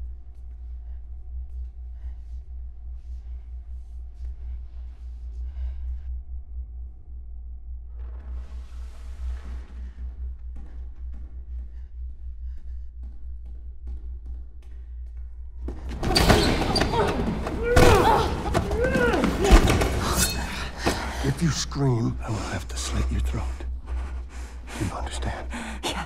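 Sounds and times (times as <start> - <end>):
struggle thuds: 15.7 - 21.4
woman crying out: 16.3 - 21.0.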